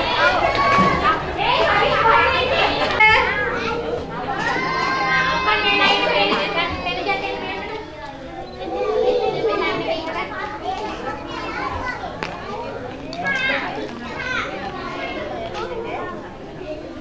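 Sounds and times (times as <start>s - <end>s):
adults talking: 0.0s - 17.0s
children chattering: 0.0s - 17.0s.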